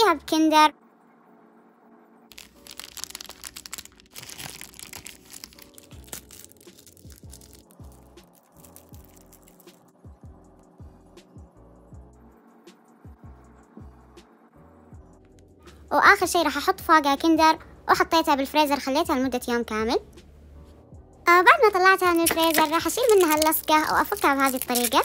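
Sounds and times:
dense crackling noise: 2.3s - 9.7s, 21.9s - 25.0s.

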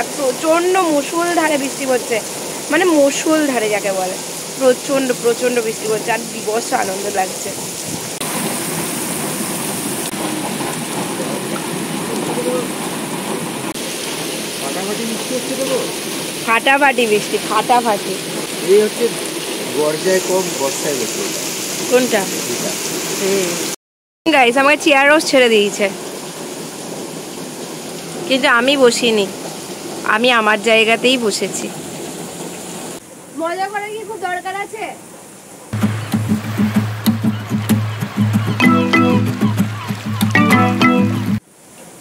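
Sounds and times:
heavy rain on pavement: 0.0s - 42.0s.

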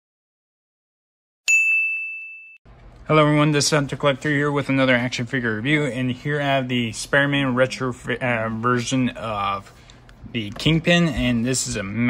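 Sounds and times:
bright bell ding: 1.5s - 2.6s.

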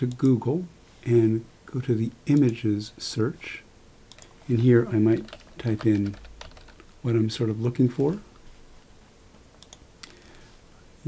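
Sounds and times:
computer mouse clicks: 4.1s - 4.4s, 9.3s - 10.2s.

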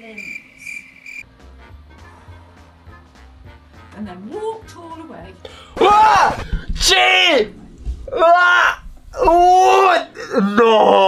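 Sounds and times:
man laughing high-pitched: 9.9s - 11.0s.

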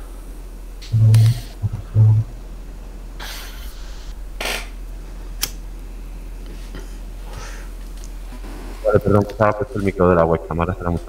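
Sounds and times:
low electrical hum: 0.0s - 11.0s
microphone click: 0.8s - 2.2s.

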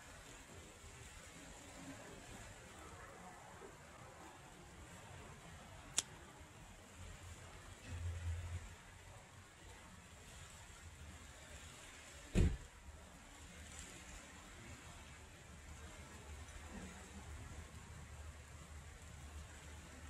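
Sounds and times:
faint steady hiss: 0.0s - 20.0s
dull thump: 12.3s - 12.7s.

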